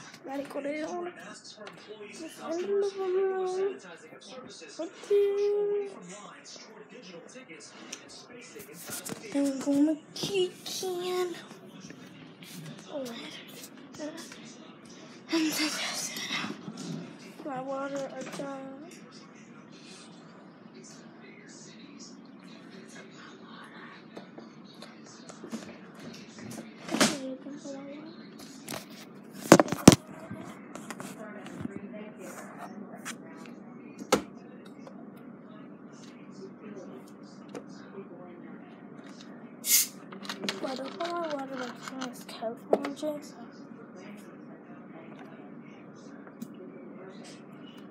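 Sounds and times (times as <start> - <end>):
faint talk: 0.0 - 47.9
person whispering: 22.6 - 24.3.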